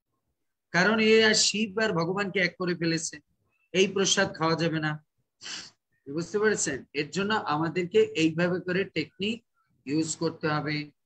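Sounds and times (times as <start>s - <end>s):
man speaking: 0.7s - 5.2s, 6.0s - 11.0s.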